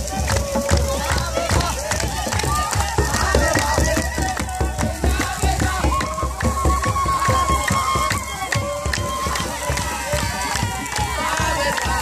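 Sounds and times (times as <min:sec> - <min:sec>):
drums beaten in fast rhythm: 0:00.0 - 0:12.0
group of voices singing: 0:00.0 - 0:12.0
hand clapping: 0:00.0 - 0:12.0.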